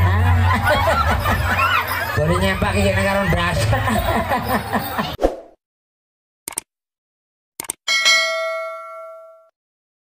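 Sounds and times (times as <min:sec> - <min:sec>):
bell ding: 0:07.9 - 0:09.5.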